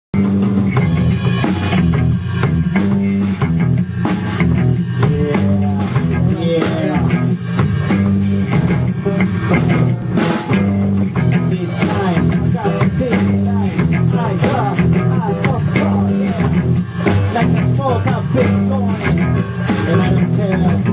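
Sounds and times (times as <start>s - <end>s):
drum kit: 0.1s - 20.9s
electric guitar: 0.2s - 20.9s
low bass line: 0.2s - 20.9s.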